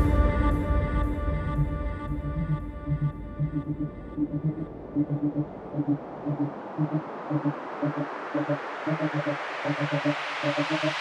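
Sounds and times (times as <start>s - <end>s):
synth bassline techno: 1.3s - 11.0s
hiss of noise: 5.2s - 11.0s.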